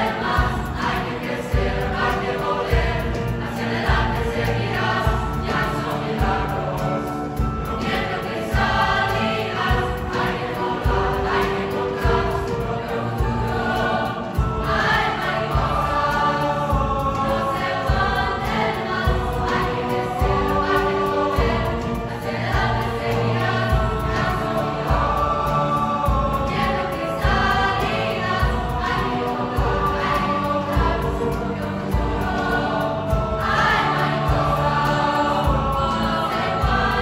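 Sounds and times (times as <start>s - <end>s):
choir singing: 0.0s - 37.0s.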